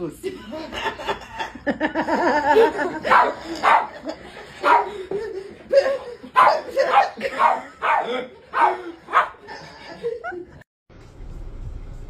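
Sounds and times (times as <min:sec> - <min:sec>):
dog barking: 0:03.0 - 0:04.0, 0:04.6 - 0:05.0, 0:06.4 - 0:09.4.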